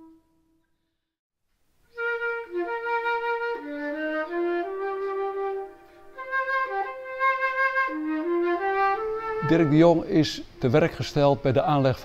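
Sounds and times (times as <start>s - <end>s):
solo flute melody: 0.0s - 0.5s, 1.9s - 10.4s.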